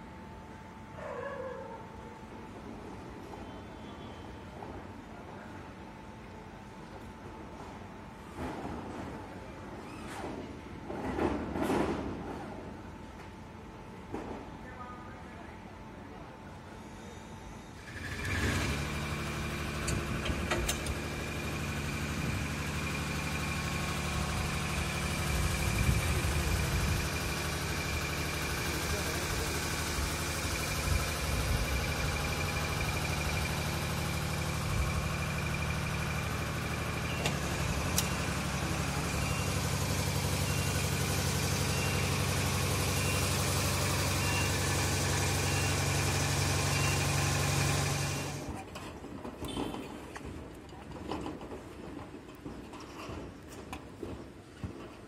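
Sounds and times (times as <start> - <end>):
engine running steadily: 17.8 - 50.2.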